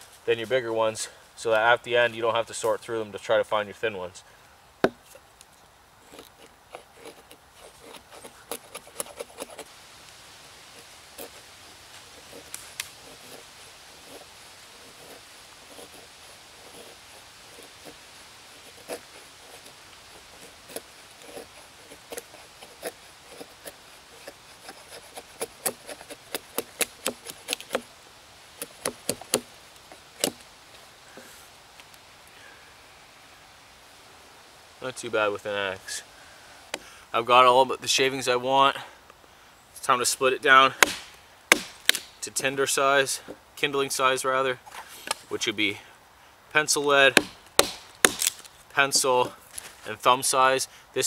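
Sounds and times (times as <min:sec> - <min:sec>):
axe shaving wood: 0:06.0 - 0:09.7, 0:10.7 - 0:27.9, 0:28.6 - 0:30.4, 0:40.7 - 0:42.1, 0:46.6 - 0:49.9.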